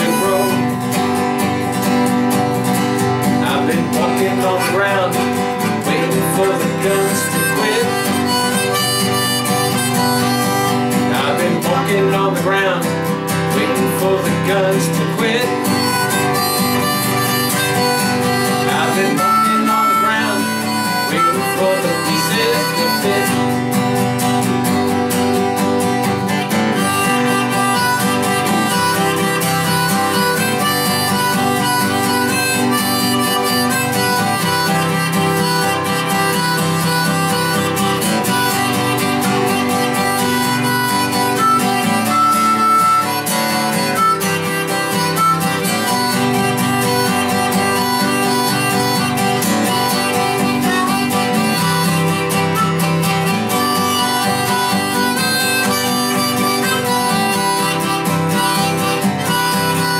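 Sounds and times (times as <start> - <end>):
harmonica solo: 0.0 - 59.9
strummed acoustic guitar: 0.0 - 59.9.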